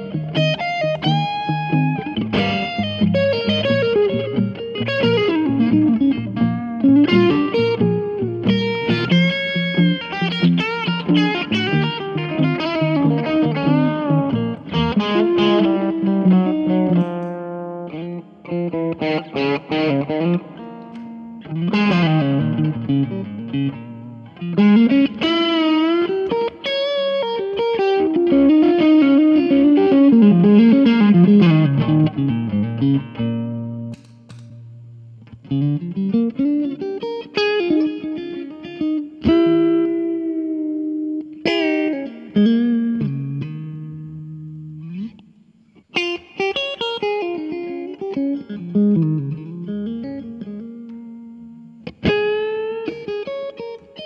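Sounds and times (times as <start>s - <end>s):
electric guitar through amp: 0.0s - 54.0s.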